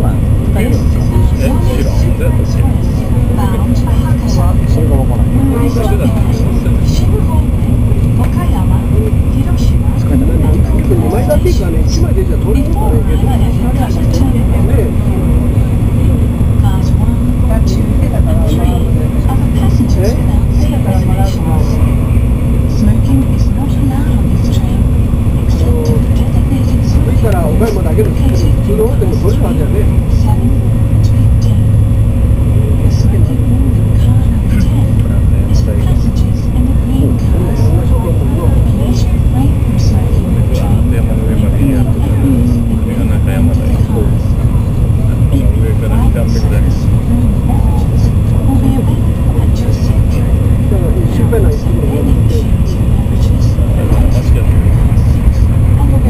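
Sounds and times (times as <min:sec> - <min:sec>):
constant hum: 0:00.0 - 0:56.0
indistinct passenger voices: 0:00.0 - 0:56.0
train cabin low rumble: 0:00.0 - 0:56.0.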